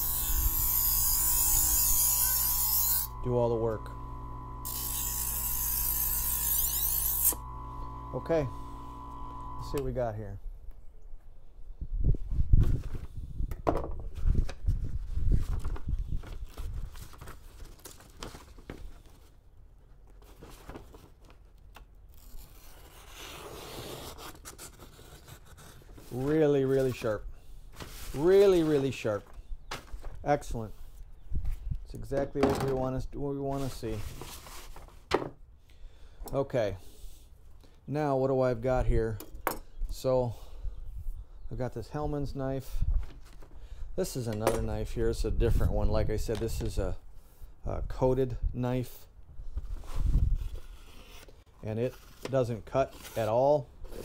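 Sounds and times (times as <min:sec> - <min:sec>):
knife sharpener grinding: 0:00.0 - 0:09.8
motor hum: 0:00.0 - 0:09.9.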